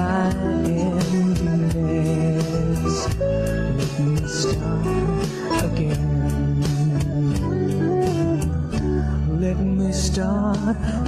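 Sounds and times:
guitar: 0.0s - 11.0s
sustained bass: 0.0s - 11.0s
worship song instrumental: 0.0s - 11.0s
steady beat: 0.2s - 9.2s.

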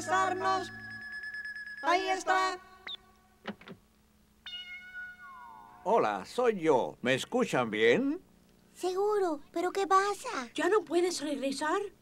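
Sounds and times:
electronic tone with falling glide: 4.5s - 5.9s.

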